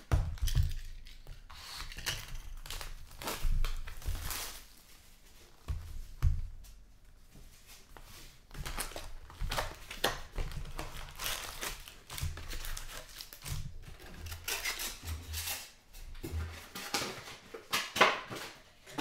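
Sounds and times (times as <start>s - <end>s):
foil wrappers crinkling: 0.0s - 5.6s, 8.5s - 15.8s.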